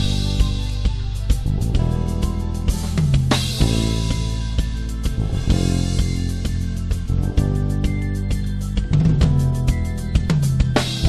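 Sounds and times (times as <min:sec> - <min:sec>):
live band instrumental music: 0:00.0 - 0:11.0
steady drum beat: 0:00.0 - 0:11.0.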